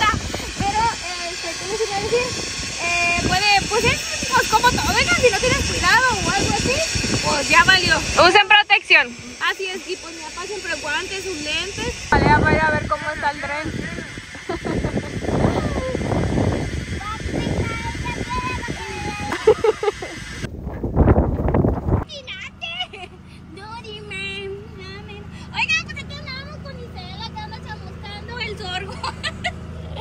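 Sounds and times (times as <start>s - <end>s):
people talking: 0.0s - 20.2s, 22.0s - 30.0s
tractor engine humming: 0.0s - 30.0s.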